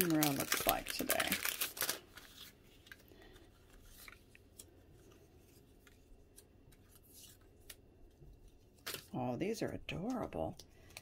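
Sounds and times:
paper rustles: 0.0 - 9.2.

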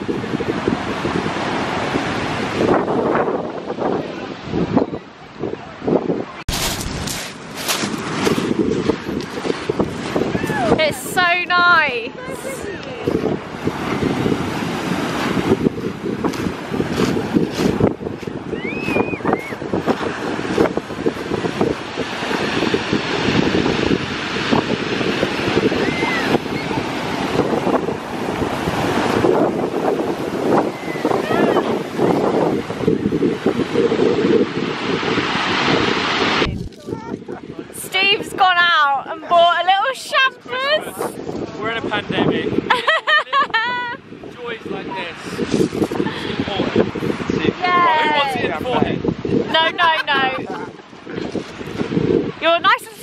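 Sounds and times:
wind buffeting microphone: 0.0 - 53.0
waves breaking on shingle: 6.5 - 10.8, 12.9 - 37.4.

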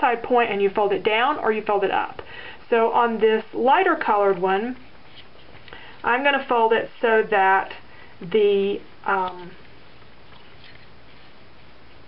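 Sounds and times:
steady background hiss: 0.0 - 12.0
paper rustling and creasing: 4.7 - 5.7, 9.6 - 12.0.

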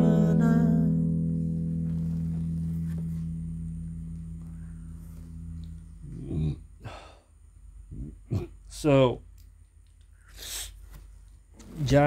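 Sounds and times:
guitar chord ringing: 0.0 - 6.3
person sighing breathily: 6.1 - 7.3.

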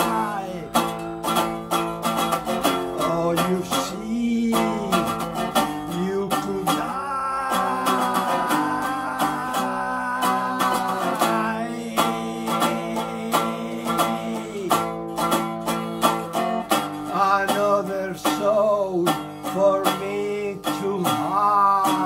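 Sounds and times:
guitar strummed: 0.0 - 22.0
man singing: 0.0 - 22.0.

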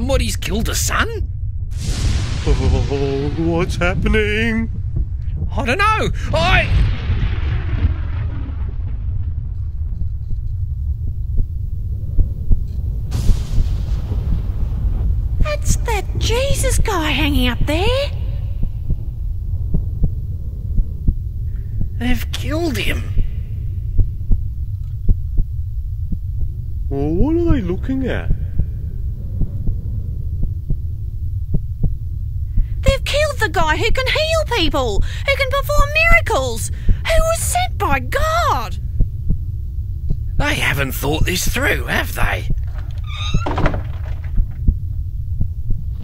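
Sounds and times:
soft heartbeat-like double beats: 1.2 - 22.4, 23.1 - 32.9, 38.8 - 40.4, 44.4 - 46.0
low rumbling drone: 1.2 - 32.9, 38.8 - 46.0.

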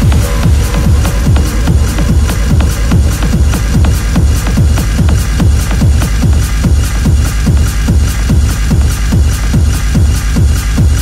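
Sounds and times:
hard techno music: 0.0 - 11.0
heavy kick drum: 0.0 - 11.0
hi-hats: 0.0 - 11.0.

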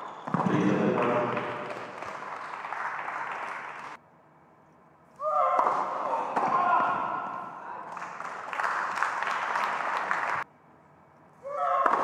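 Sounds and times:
reverberant hall noise: 0.0 - 12.0
man talking: 0.4 - 1.4.

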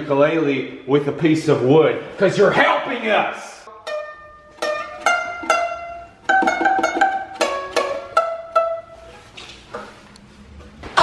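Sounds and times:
ukulele plucked melody: 3.7 - 9.3.

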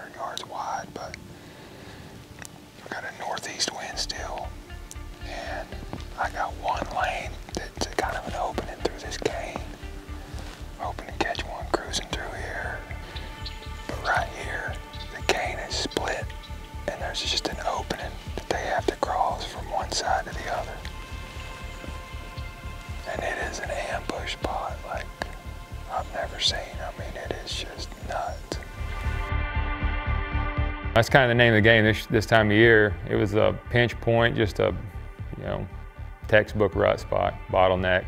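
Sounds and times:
whispered speech: 0.0 - 1.1, 2.8 - 4.5, 6.2 - 9.7, 10.8 - 12.8, 13.9 - 16.3, 16.9 - 20.8, 23.1 - 25.3, 25.9 - 28.7
background music with low pulse: 0.0 - 38.0.

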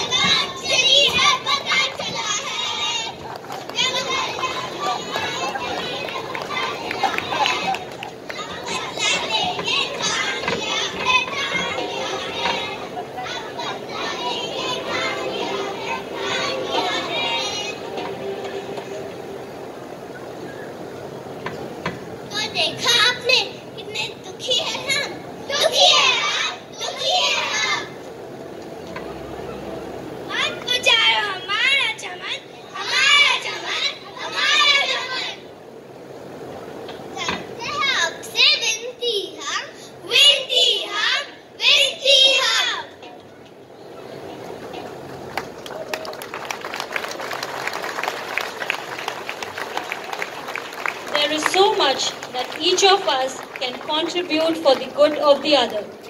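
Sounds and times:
children shouting and chattering: 0.0 - 56.0.

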